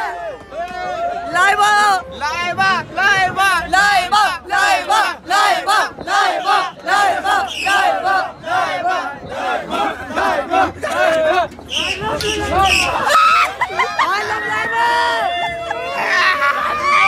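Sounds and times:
crowd of young men chanting: 0:02.6 - 0:13.1.

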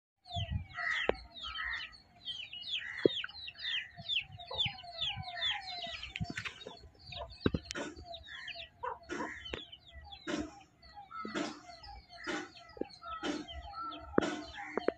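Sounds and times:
baby chicks peeping: 0:00.2 - 0:14.9
hen clucking: 0:00.4 - 0:14.9.

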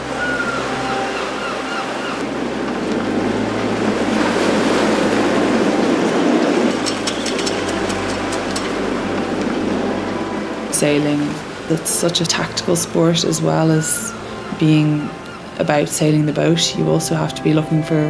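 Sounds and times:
sea surf breaking on beach: 0:00.0 - 0:14.6.

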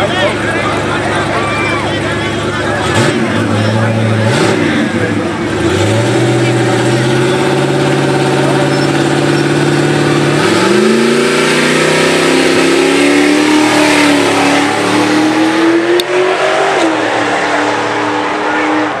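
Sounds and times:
drag car engine revving: 0:00.0 - 0:19.0.

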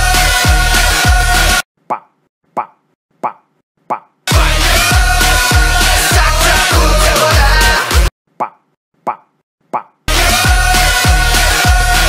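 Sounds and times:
music: 0:00.0 - 0:01.6, 0:04.3 - 0:08.1, 0:10.1 - 0:12.0.

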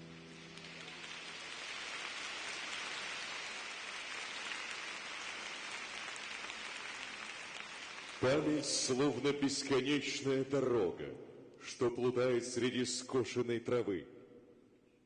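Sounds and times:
audience applauding: 0:00.0 - 0:08.9.

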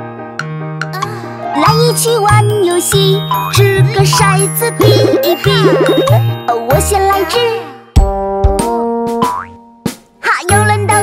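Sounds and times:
children's song: 0:01.0 - 0:08.0, 0:10.2 - 0:11.0
cartoon boing sound effect: 0:05.0 - 0:06.3, 0:09.2 - 0:09.6.

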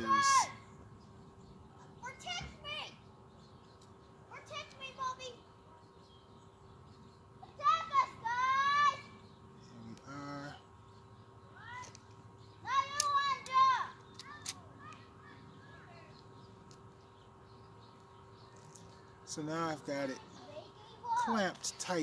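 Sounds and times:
children calling out: 0:00.0 - 0:00.6, 0:04.3 - 0:05.4, 0:07.4 - 0:09.2, 0:11.6 - 0:12.0, 0:12.6 - 0:16.1
faint steady hum: 0:00.0 - 0:22.0
sharp clicks: 0:12.9 - 0:15.1.

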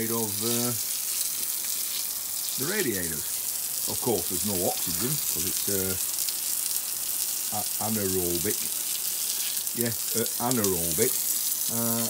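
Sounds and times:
water jet spraying on paving: 0:00.0 - 0:12.0.

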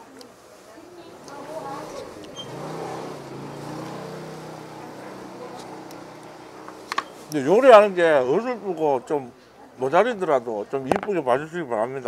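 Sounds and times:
vehicle engine running: 0:01.5 - 0:07.6.

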